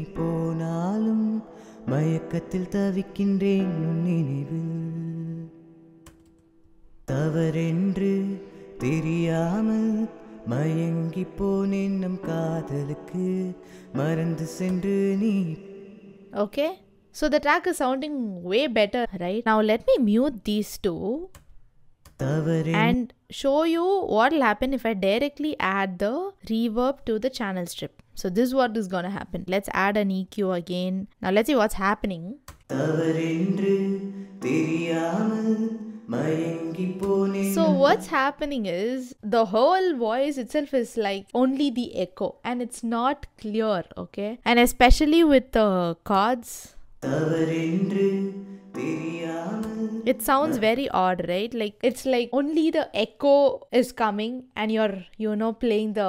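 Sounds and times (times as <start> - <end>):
person singing with echo: 0.0 - 5.8, 7.1 - 16.4, 22.2 - 23.0, 32.7 - 38.2, 47.0 - 50.8
reverb-drenched sung vocal: 0.0 - 5.9, 7.1 - 16.4, 22.2 - 23.0, 32.7 - 38.2, 47.0 - 50.8
song chords: 7.1 - 17.0, 22.7 - 23.0, 32.8 - 38.3, 47.0 - 50.8
chord backing: 32.9 - 38.2, 47.1 - 50.8.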